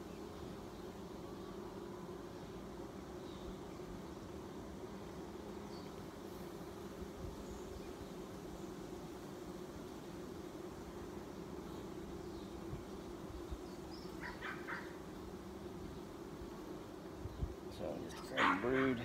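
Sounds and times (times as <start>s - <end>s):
bees humming: 0.0s - 19.0s
harsh animal calls: 18.3s - 19.0s.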